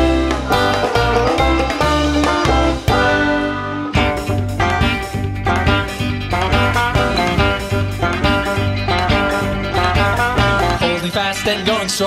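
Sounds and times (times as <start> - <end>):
banjo picking: 0.0 - 12.0
bass line: 0.0 - 12.0
folk-rock backing band: 0.0 - 12.0.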